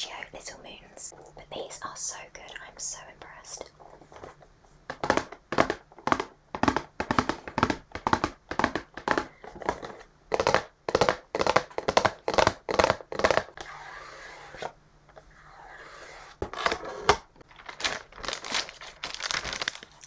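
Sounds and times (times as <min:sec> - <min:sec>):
fingernails tapping cardboard: 0:04.9 - 0:13.5.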